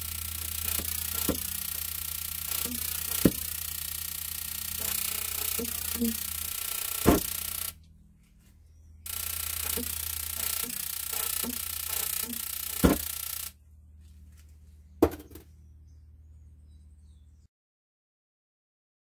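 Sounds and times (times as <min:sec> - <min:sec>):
loud buzzing hiss: 0:00.0 - 0:07.8, 0:09.1 - 0:13.5
sharp electrical snaps: 0:00.0 - 0:07.8, 0:09.1 - 0:13.5
steady electrical hum: 0:00.0 - 0:17.0.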